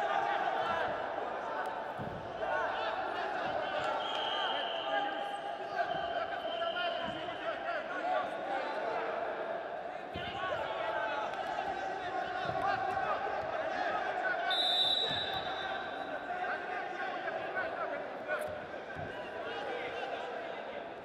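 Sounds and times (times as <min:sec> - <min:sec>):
voices in a large hall: 0:00.0 - 0:21.0.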